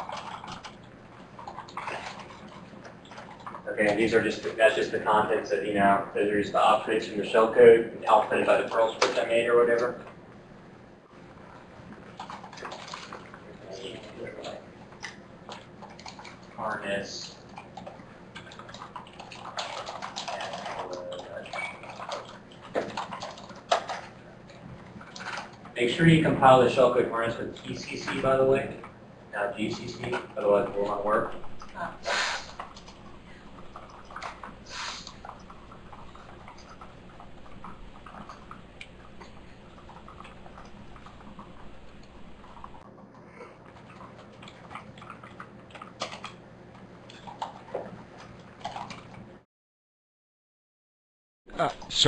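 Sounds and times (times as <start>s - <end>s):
keyboard typing clatter: 0.0s - 5.3s, 11.9s - 26.9s, 29.6s - 49.3s.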